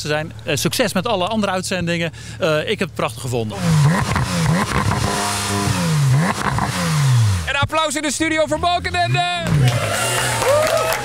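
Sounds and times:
car engine revving: 3.4s - 11.0s.

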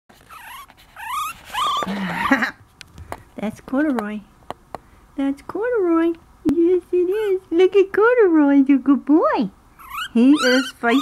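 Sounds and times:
puppy whimpering: 0.2s - 2.6s, 9.8s - 11.0s.

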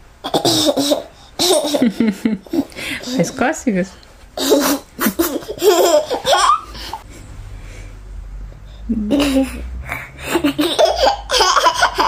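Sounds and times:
laughter: 1.7s - 2.6s.

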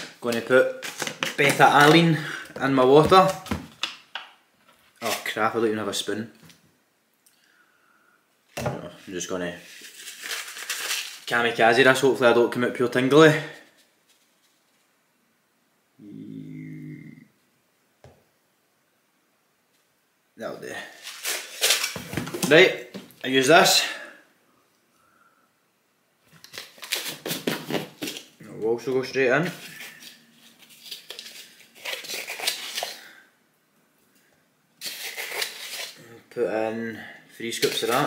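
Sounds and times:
man groaning: 16.0s - 17.3s
plastic scoop scraping powder: 34.8s - 36.0s.

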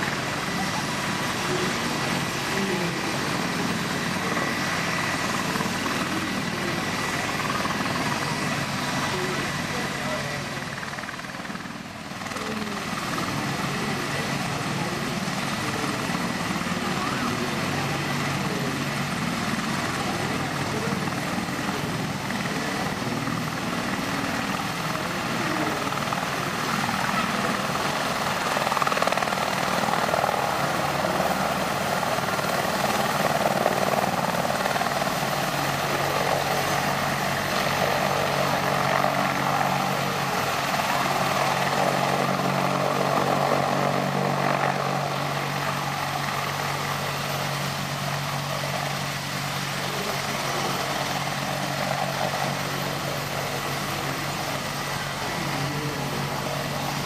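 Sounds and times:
helicopter engine whine: 0.0s - 57.0s
helicopter rotor blade noise: 0.0s - 57.0s.

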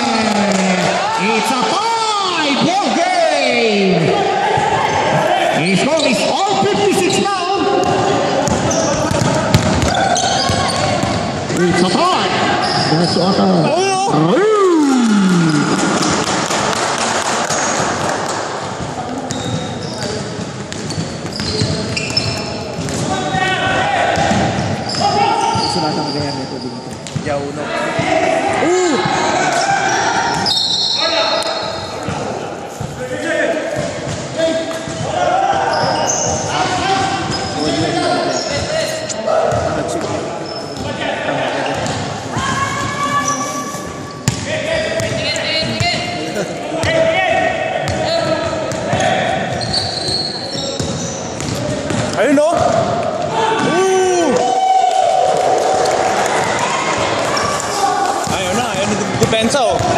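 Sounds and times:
players shouting: 23.0s - 25.8s, 27.6s - 32.4s, 33.1s - 39.8s, 44.3s - 59.9s.

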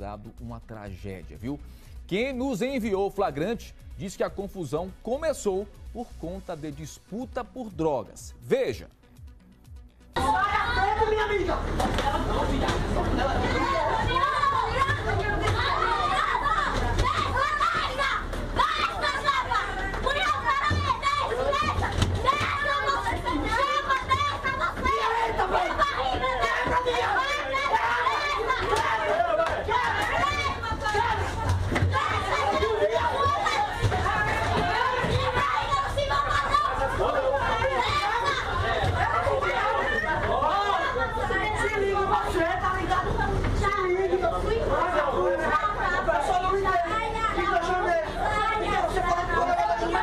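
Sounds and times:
many voices talking loudly: 10.2s - 50.0s
people shouting and yelling: 10.2s - 50.0s.

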